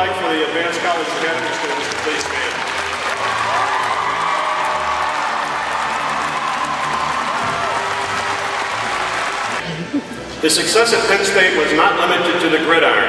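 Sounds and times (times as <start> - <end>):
audience applauding: 0.0 - 9.6
music playing: 0.0 - 13.0.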